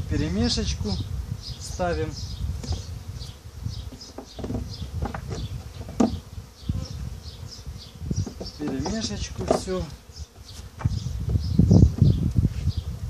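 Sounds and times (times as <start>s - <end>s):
honeybees buzzing: 0.0s - 13.0s
wooden knocks of frames: 3.9s - 6.2s, 8.2s - 9.8s.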